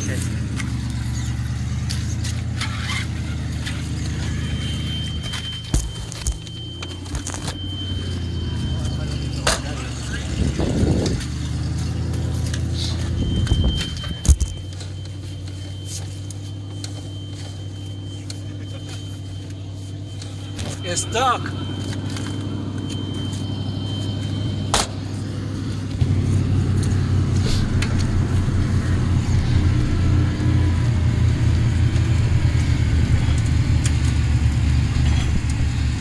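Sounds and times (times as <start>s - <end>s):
car engine idling: 0.0s - 36.0s.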